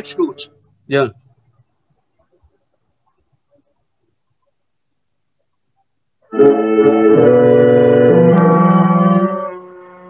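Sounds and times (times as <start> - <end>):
electronic flute: 6.2 - 10.0
tenor saxophone: 6.3 - 10.0.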